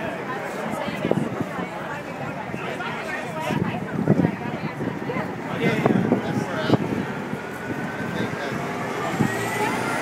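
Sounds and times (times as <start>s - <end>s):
crowd chatter: 0.0s - 10.0s
street traffic: 0.0s - 10.0s.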